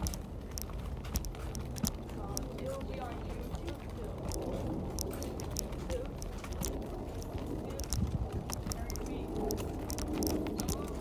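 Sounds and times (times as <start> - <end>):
wheelchair wheels rumbling: 0.0 - 11.0.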